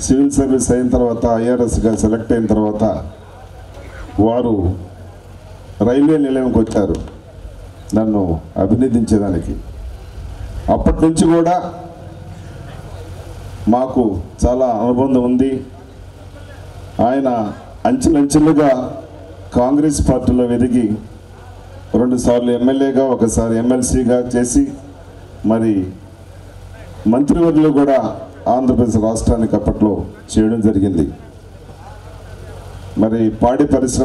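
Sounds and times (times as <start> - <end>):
man speaking into a microphone: 0.0 - 5.1, 5.7 - 7.3, 7.9 - 9.8, 10.5 - 31.4, 32.4 - 34.0
low background noise: 0.0 - 34.0
sound system hum: 0.0 - 34.0.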